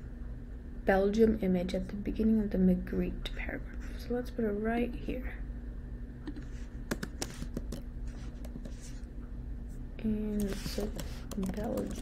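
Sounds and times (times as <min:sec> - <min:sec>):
steady low hum: 0:00.0 - 0:12.0
laptop clicks and taps: 0:06.3 - 0:07.8.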